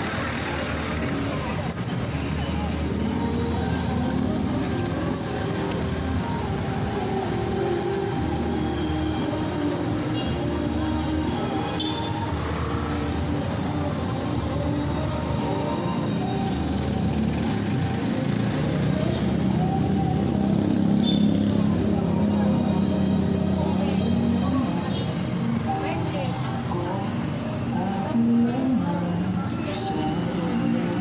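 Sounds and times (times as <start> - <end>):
people talking: 0.0 - 7.2, 18.9 - 31.0
cars passing: 0.0 - 31.0.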